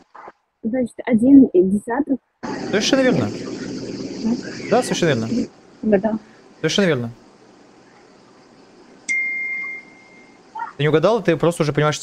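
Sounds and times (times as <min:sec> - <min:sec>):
high chime: 0:09.1 - 0:10.4.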